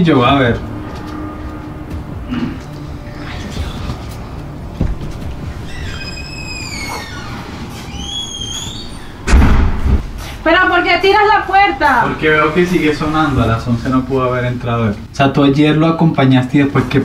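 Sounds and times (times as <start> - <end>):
door hinge squeaking: 5.5 - 9.3
door slamming thud: 9.2 - 10.0.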